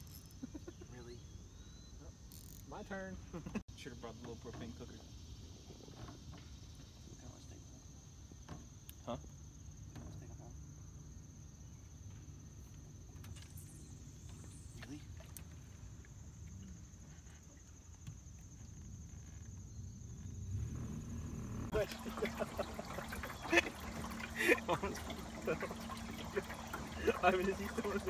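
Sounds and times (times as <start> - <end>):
insects chirring: 0.0 - 28.0.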